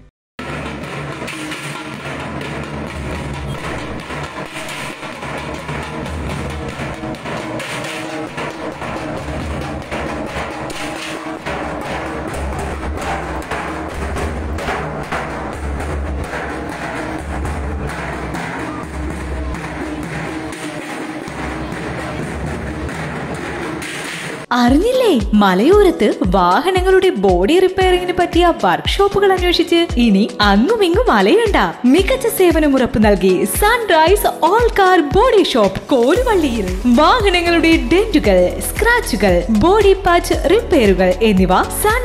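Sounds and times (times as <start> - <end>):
street drum group drumming: 0.4 - 24.5, 36.1 - 42.0.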